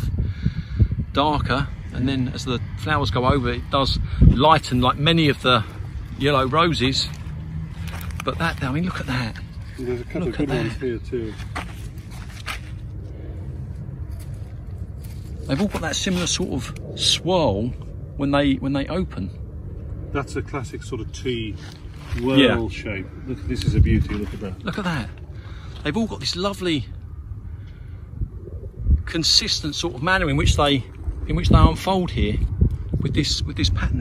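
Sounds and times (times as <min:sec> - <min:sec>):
steady low rumble: 0:00.0 - 0:34.0
wind buffeting microphone: 0:00.0 - 0:34.0.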